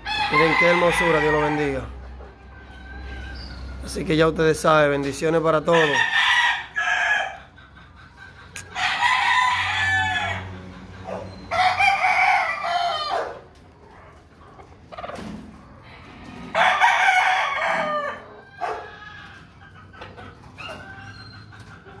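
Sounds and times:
roosters crowing: 0.0s - 22.0s.

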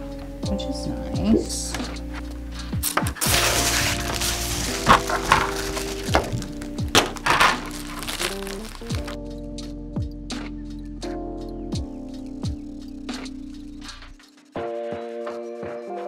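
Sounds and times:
background music with sustained notes: 0.0s - 16.0s
plastic film peeling and crinkling: 2.8s - 9.2s.

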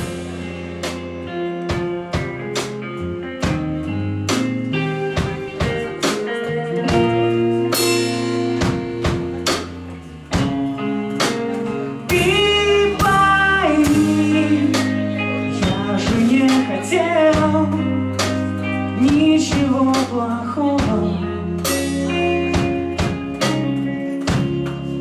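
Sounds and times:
bass guitar: 0.0s - 25.0s
electric guitar strumming: 0.0s - 25.0s
steady drum beat: 0.0s - 25.0s.

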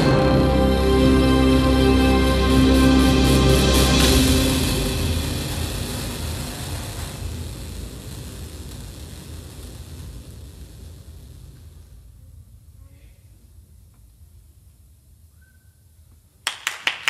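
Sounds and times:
concert band chord ringing out: 0.0s - 6.6s.

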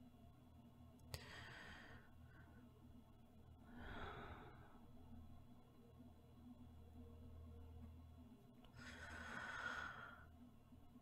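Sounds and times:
woman breathing in sleep: 3.6s - 4.9s, 8.7s - 10.4s.

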